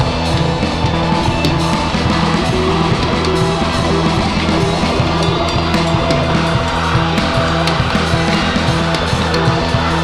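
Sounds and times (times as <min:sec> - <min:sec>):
psychedelic rock music: 0:00.0 - 0:10.0.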